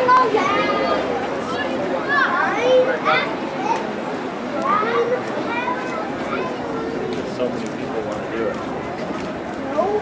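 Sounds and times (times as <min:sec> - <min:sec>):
children shouting and calling: 0:00.0 - 0:07.3
children's voices and chatter: 0:00.0 - 0:10.0.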